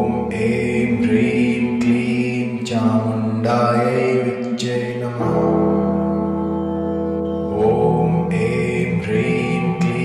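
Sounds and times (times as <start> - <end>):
person chanting: 0.0 - 6.3, 7.2 - 10.0
background music: 0.0 - 10.0.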